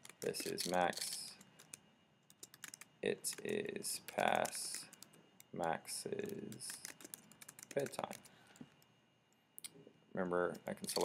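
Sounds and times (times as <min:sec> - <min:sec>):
computer keyboard keys clicking: 0:00.0 - 0:08.3.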